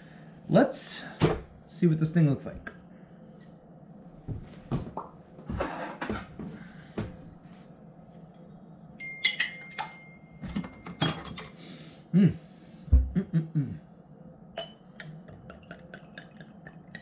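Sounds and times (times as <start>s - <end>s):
glass clinks ringing: 9.0s - 11.6s, 14.6s - 14.8s.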